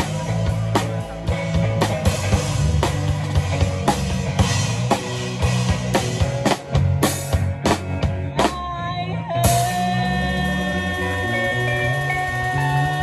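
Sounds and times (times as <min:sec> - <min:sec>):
live band music: 0:00.0 - 0:13.0.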